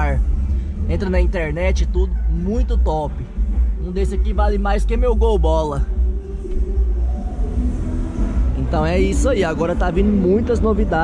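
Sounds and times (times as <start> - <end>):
heavy low rumble: 0.0 - 11.0.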